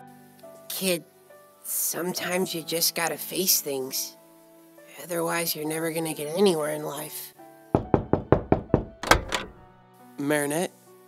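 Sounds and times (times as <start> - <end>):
knocking on a door: 7.8 - 9.6.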